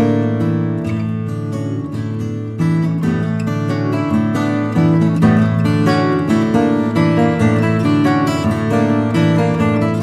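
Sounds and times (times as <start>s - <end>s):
plucked string acoustic music: 0.0s - 10.0s.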